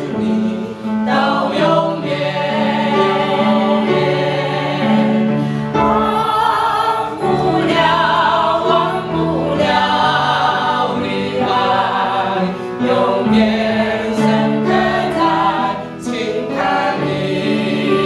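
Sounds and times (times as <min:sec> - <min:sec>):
group singing a hymn: 0:00.0 - 0:18.0.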